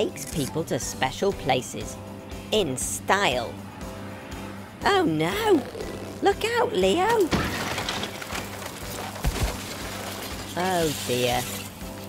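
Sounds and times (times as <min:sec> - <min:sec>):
cartoon background music: 0:00.0 - 0:12.0
car scraping along branch: 0:07.7 - 0:12.0.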